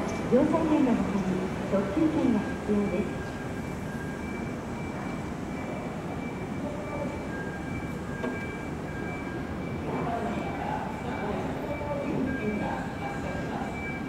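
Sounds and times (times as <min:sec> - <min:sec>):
faint high steady tones: 0:00.0 - 0:14.0.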